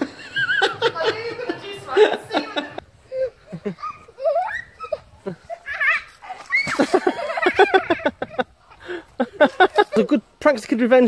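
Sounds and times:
children laughing and squealing: 0.0 - 10.4.

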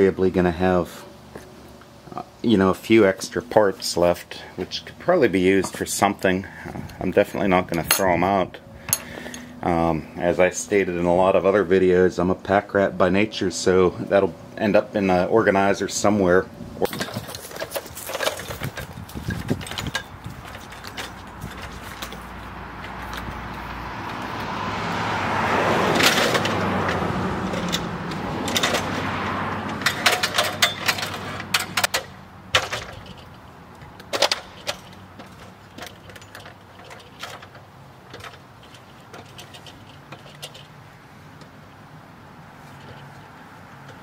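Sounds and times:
passing vehicle: 0.0 - 44.0
ladder clanking and rattling: 16.8 - 24.5, 25.9 - 40.8.

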